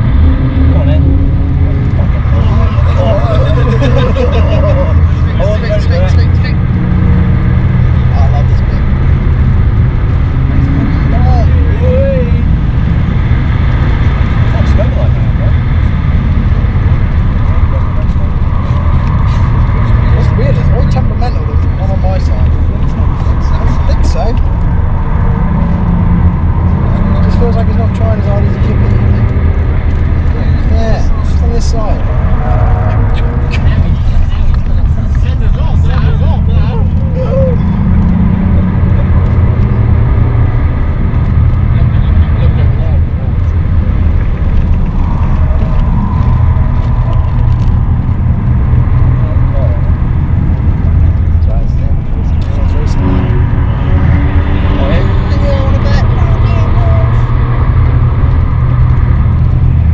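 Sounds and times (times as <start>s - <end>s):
people talking and laughing: 0.0s - 9.1s, 10.5s - 12.6s, 14.2s - 25.5s, 30.2s - 40.2s, 41.6s - 48.4s, 50.9s - 57.5s
diesel engine running: 0.0s - 59.9s
road and wind noise: 0.0s - 59.9s.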